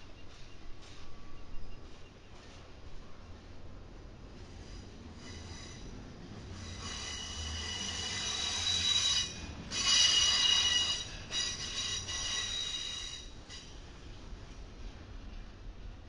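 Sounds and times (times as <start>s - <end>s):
train wheels squealing on rail: 0.0s - 2.7s, 4.4s - 13.9s
train rolling rumble: 0.0s - 16.0s.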